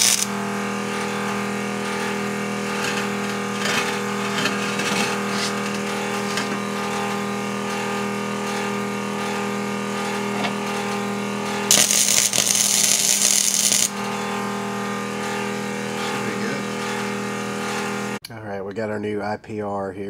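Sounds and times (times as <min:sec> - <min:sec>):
arc welding crackling hiss: 0:00.0 - 0:00.3, 0:11.7 - 0:14.0
steady machine hum: 0:00.0 - 0:18.6.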